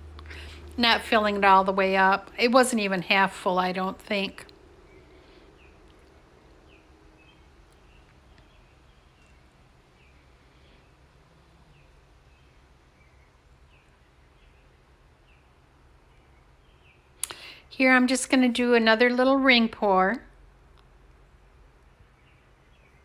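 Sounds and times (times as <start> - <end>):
low steady hum: 0.0 - 23.0
faint bird chirps: 4.8 - 17.5.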